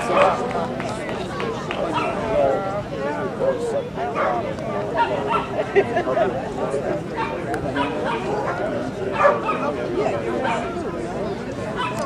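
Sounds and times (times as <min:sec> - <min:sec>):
people chattering: 0:00.0 - 0:12.0
dog barking: 0:07.2 - 0:09.7, 0:11.8 - 0:12.0.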